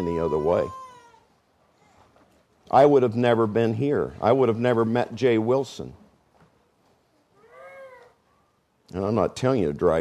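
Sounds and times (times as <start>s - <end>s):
faint high meow-like cry: 0.0s - 1.3s, 7.4s - 8.2s.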